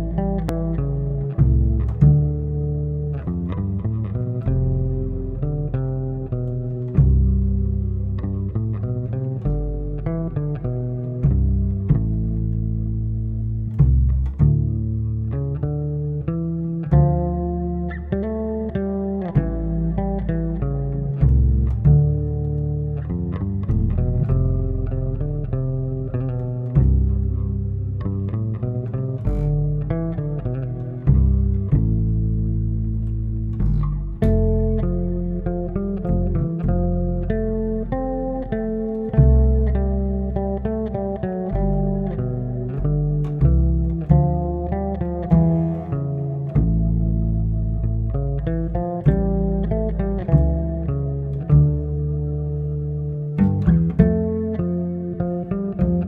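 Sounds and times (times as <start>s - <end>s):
upright and electric bass duet: 0.0s - 56.0s.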